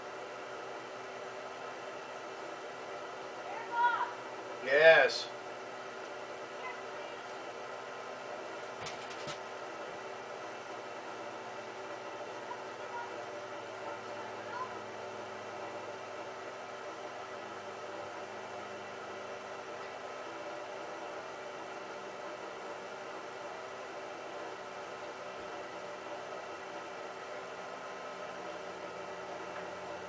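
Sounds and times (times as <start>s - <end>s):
faint hum: 0.0s - 30.0s.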